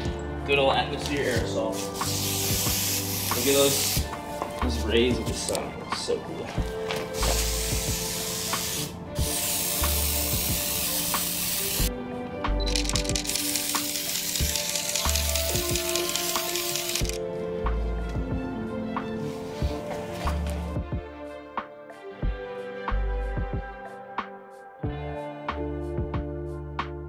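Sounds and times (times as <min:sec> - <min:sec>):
spray can hissing: 0:01.7 - 0:04.2, 0:07.0 - 0:11.9, 0:12.7 - 0:17.2.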